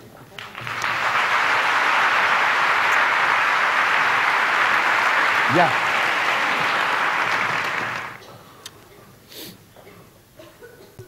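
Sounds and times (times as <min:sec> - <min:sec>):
audience applauding: 0:00.4 - 0:08.2.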